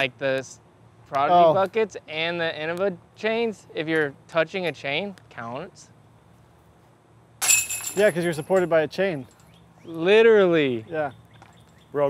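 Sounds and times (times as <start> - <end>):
metal basket struck ringing: 7.4 - 8.6.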